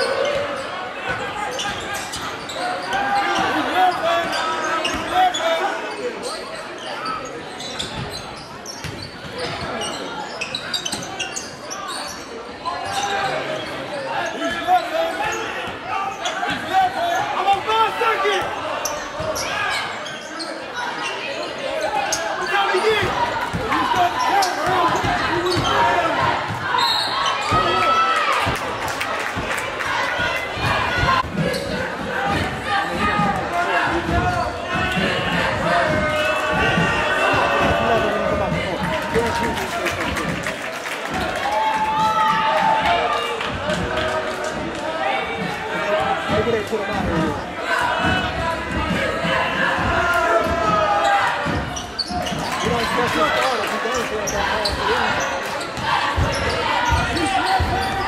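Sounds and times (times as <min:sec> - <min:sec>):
crowd and player voices: 0:00.0 - 0:58.0.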